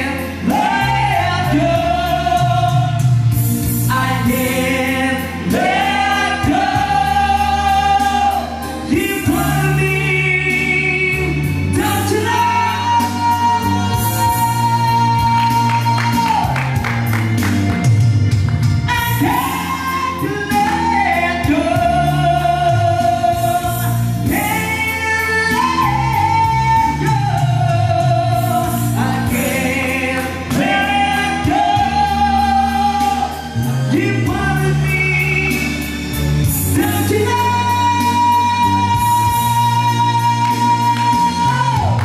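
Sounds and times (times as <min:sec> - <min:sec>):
man singing rock ballad: 0:00.0 - 0:16.8, 0:18.8 - 0:36.0, 0:36.6 - 0:42.0
backing music with bass line: 0:00.0 - 0:42.0.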